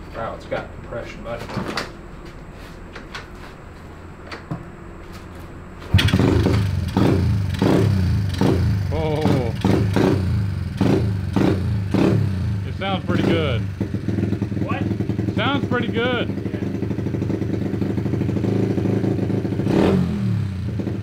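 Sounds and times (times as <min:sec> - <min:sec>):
motorcycle engine revving: 0:05.9 - 0:21.0.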